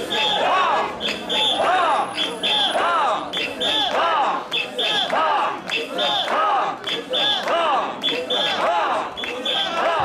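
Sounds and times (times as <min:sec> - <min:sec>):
group chanting in rhythm: 0:00.0 - 0:10.0
whistle blasts: 0:01.0 - 0:03.8, 0:09.2 - 0:09.9.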